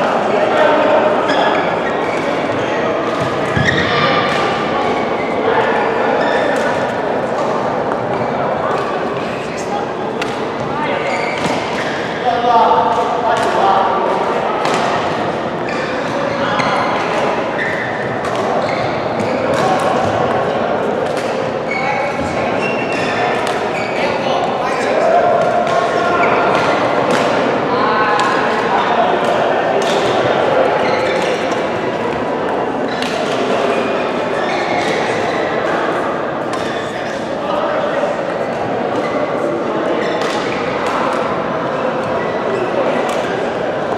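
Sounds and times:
players' voices echoing: 0:00.0 - 0:43.9
rackets hitting shuttlecock: 0:03.0 - 0:04.7, 0:10.2 - 0:10.6, 0:14.6 - 0:15.3, 0:18.0 - 0:18.6, 0:25.4 - 0:27.5, 0:28.1 - 0:30.4, 0:40.1 - 0:41.4.

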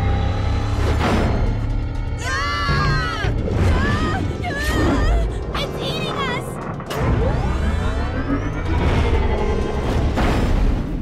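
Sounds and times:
cartoon action background music: 0:00.0 - 0:11.0
deep rumble: 0:00.0 - 0:11.0.

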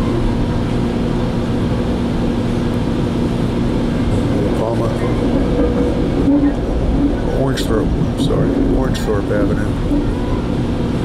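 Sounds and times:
train rumbling: 0:00.0 - 0:11.0.

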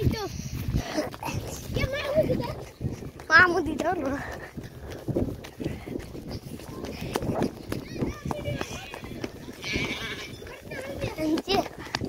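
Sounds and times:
running footsteps thudding: 0:00.0 - 0:12.0
voices calling out: 0:00.0 - 0:12.0
phone microphone being jostled: 0:04.8 - 0:12.0.

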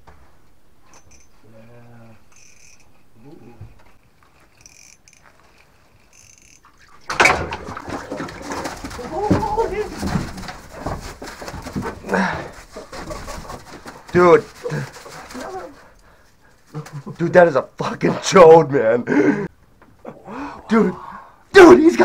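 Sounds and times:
faint thin squeaks: 0:00.8 - 0:07.0.

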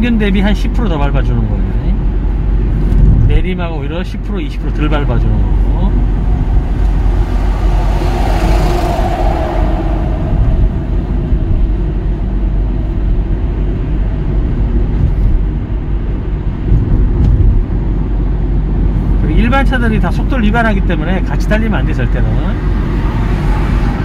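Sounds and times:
car cabin road and engine noise: 0:00.0 - 0:24.0
rushing swell: 0:04.7 - 0:14.0.

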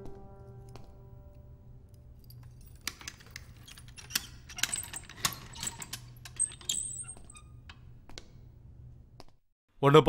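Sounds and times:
keys and lock clinking: 0:01.9 - 0:07.8.

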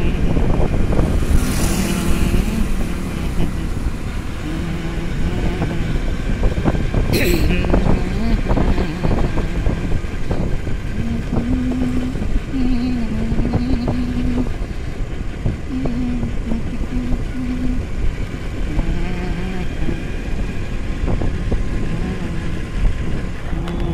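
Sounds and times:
motorbike engine: 0:00.0 - 0:23.9.

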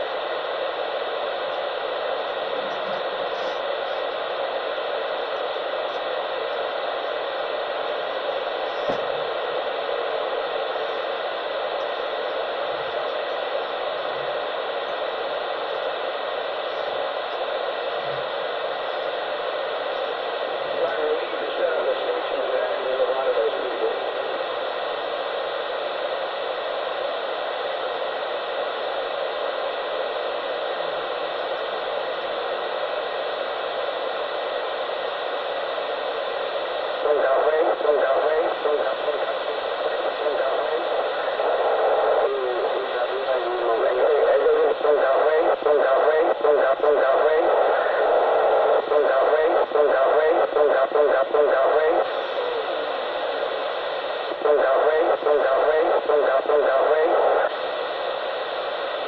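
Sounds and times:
radio static hiss: 0:00.0 - 0:59.0.

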